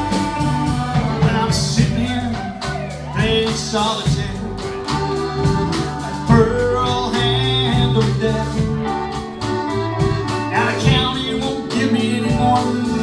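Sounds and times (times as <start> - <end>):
live country rock band: 0.0 - 13.0
steady drumbeat: 0.0 - 13.0.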